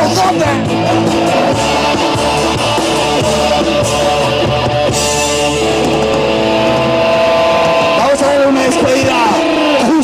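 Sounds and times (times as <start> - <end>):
punk band holding a chord: 0.0 - 10.0
voices shouting and singing: 0.0 - 10.0.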